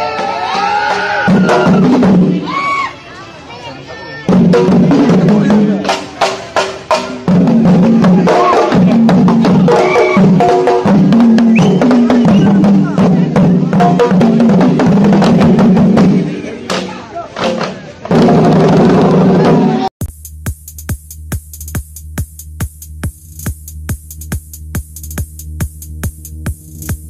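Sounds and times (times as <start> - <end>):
drum ensemble playing: 0.0 - 2.8, 4.3 - 27.0.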